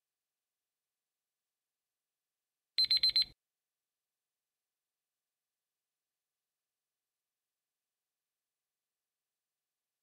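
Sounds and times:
high-pitched timer beeps: 2.8s - 3.3s.

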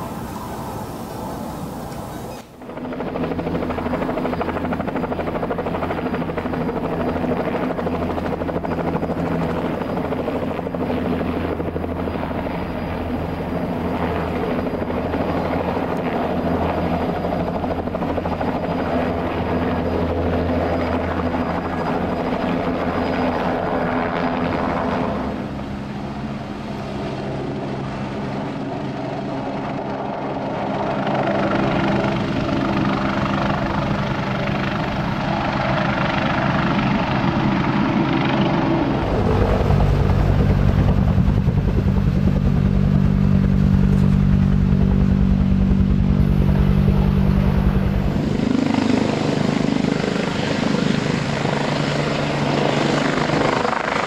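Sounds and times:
helicopter flying: 0.0s - 54.0s
helicopter turbine and rotor: 0.0s - 54.0s.

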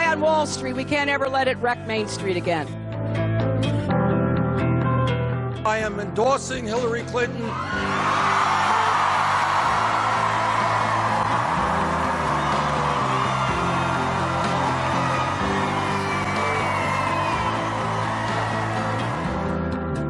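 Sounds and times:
background music with bass line: 0.0s - 20.0s
crowd cheering and whooping: 7.5s - 19.8s.

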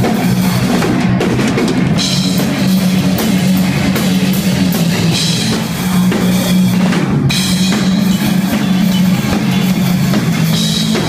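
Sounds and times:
bass guitar low notes: 0.0s - 11.0s
drum kit with cymbals: 0.0s - 11.0s
electric guitar: 0.0s - 11.0s.

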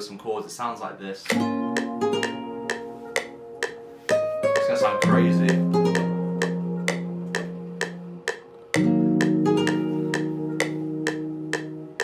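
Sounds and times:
held chords: 1.3s - 12.0s
plucked nylon-string guitar melody: 1.3s - 12.0s.

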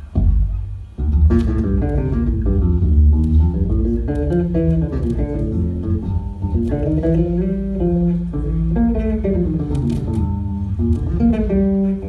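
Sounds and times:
drums: 0.0s - 2.3s
electric bass guitar: 0.0s - 12.0s
guitar: 0.0s - 12.0s.

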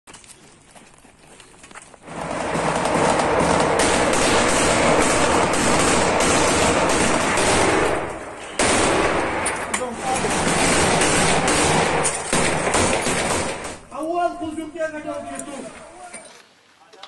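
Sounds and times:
automatic rifle fire: 2.1s - 13.8s.

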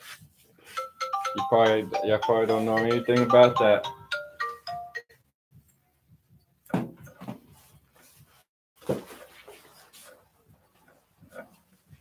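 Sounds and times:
electronic ringtone melody: 0.7s - 5.2s.

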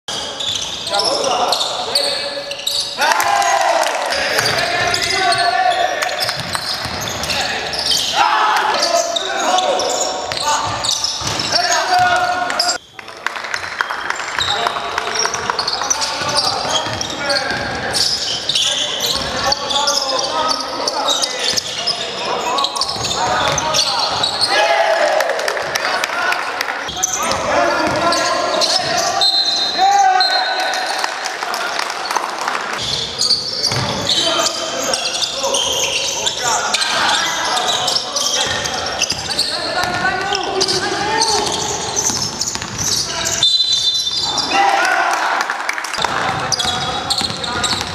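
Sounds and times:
shoe squeaks and knocks: 0.1s - 3.0s, 4.4s - 12.8s, 14.2s - 24.6s, 26.9s - 29.8s, 32.8s - 44.5s, 46.0s - 47.9s
players shouting: 3.0s - 12.8s, 22.3s - 32.2s, 44.1s - 47.9s
basketball bouncing: 6.2s - 7.4s, 10.3s - 12.2s, 38.4s - 43.0s, 46.0s - 47.9s.

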